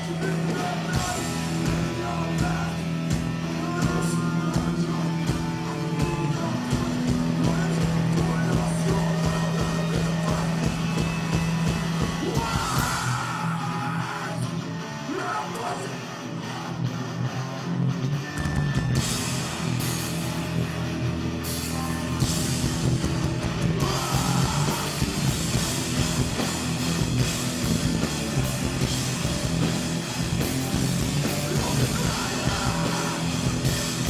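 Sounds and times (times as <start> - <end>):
drums with crashing cymbals: 0.0 - 13.5, 18.3 - 34.0
bass guitar: 0.0 - 34.0
distorted electric guitars: 0.0 - 34.0
shouted vocal: 12.2 - 16.8, 23.7 - 25.2.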